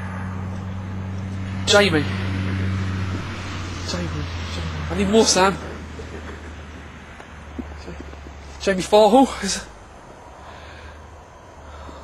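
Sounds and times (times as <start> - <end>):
low mechanical drone: 0.0 - 12.0.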